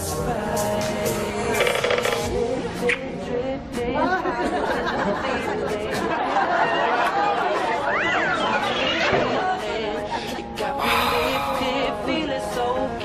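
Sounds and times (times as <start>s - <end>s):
music: 0.0s - 13.0s
people chattering: 4.9s - 12.0s
high rising-and-falling vocal call: 7.6s - 9.8s.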